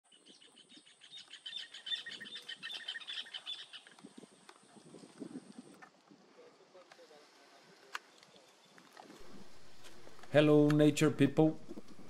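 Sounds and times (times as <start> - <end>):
bird chirping: 0.1 - 3.9.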